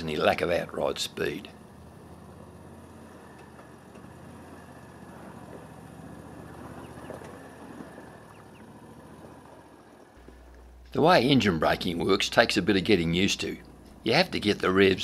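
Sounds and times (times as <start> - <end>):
faint vehicle engine running: 0.0 - 15.0.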